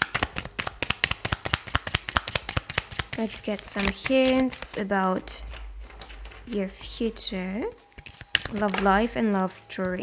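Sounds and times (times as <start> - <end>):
cards being shuffled: 0.0 - 9.2.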